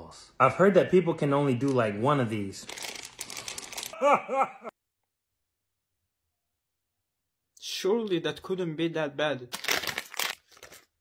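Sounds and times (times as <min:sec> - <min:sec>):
man wailing in pain: 0:04.0 - 0:04.7.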